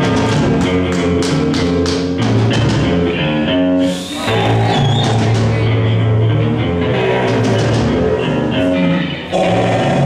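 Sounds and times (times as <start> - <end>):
drums: 0.0 - 10.0
electric guitar sustained notes: 5.7 - 10.0.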